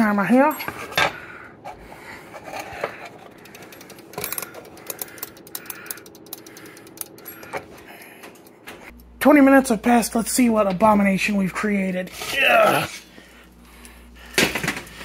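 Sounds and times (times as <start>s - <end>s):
faint steady hum: 0.0s - 15.0s
kitchen timer clockwork ticking: 3.2s - 8.1s.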